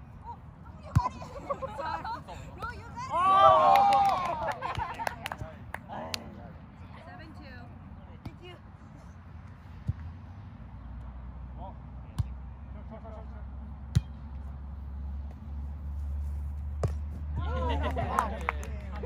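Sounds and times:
faint players' voices: 17.2s - 19.0s.

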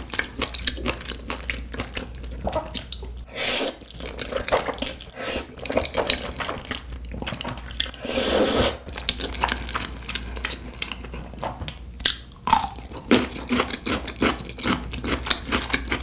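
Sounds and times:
slurp: 3.3s - 5.6s, 8.0s - 8.8s.

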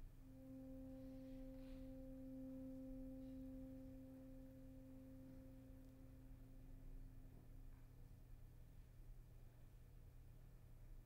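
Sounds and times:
saxophone holding long note: 0.2s - 7.7s.

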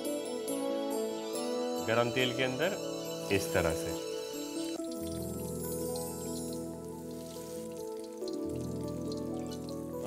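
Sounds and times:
background music of held chords: 0.0s - 10.0s
food deep-frying in hot oil: 4.7s - 10.0s.

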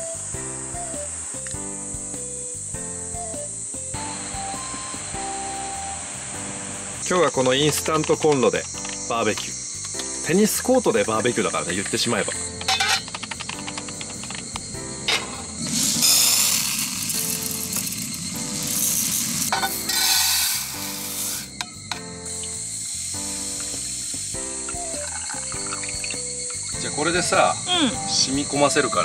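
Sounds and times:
background music melody: 0.0s - 29.0s
hissing splashing noise: 3.4s - 29.0s.

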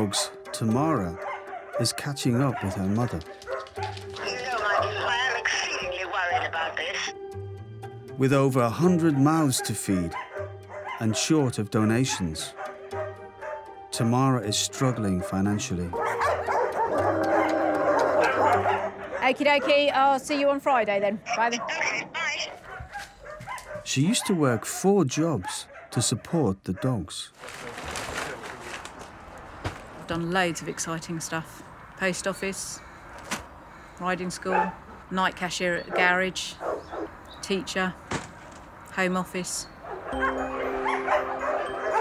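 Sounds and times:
dogs barking and yipping: 0.0s - 6.0s, 8.8s - 11.3s, 12.1s - 13.8s, 15.3s - 20.1s, 21.3s - 27.0s, 34.4s - 35.1s, 35.8s - 37.3s, 39.6s - 42.0s
music holding sustained chord: 0.0s - 19.4s, 40.1s - 42.0s
faint dog noises: 34.5s - 35.0s.

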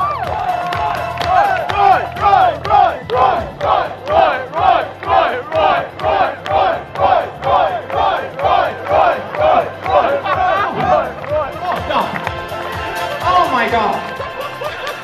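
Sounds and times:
crowd chanting in unison: 1.3s - 13.1s.

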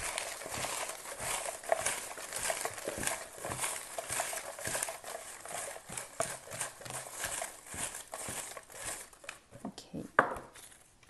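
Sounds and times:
paper rustling and crinkling: 0.0s - 9.6s, 10.5s - 11.0s.

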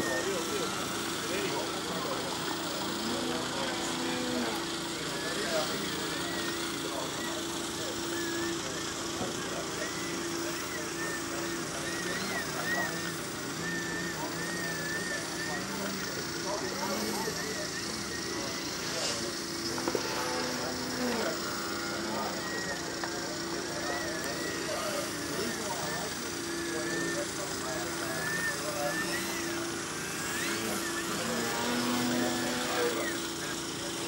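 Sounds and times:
model plane motor whine: 0.0s - 34.0s
people talking: 0.0s - 34.0s.

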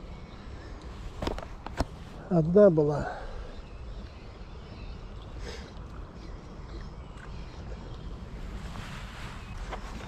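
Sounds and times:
faint rustle: 0.5s - 2.4s, 5.0s - 10.0s.

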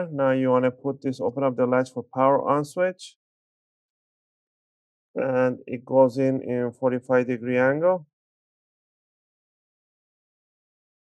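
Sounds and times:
person speaking: 0.0s - 3.1s, 5.2s - 8.0s.

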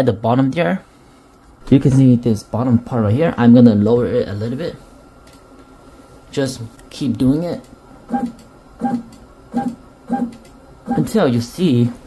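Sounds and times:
stepper motors humming: 8.1s - 11.2s.

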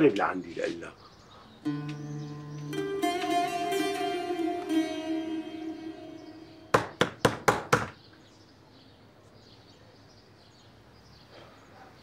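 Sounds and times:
plucked-string music: 1.7s - 7.5s
knocks on wooden door: 6.8s - 8.0s.

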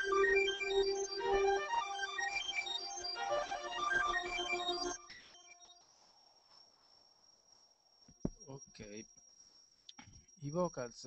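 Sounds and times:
electronic music with synth notes: 0.0s - 5.8s
faint high whine: 0.0s - 11.0s.

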